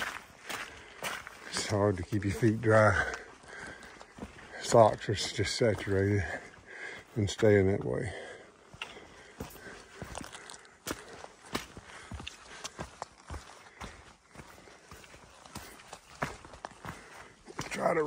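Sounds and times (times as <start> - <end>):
boot footsteps on rocky trail: 0.0 - 18.0.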